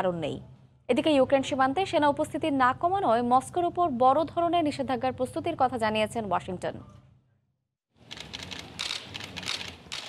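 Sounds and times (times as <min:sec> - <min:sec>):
camera shutters clicking: 0:08.1 - 0:10.0.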